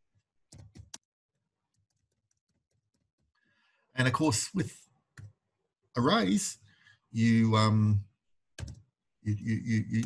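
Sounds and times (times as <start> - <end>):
faint keyboard typing: 0.5 - 3.4, 8.6 - 8.9.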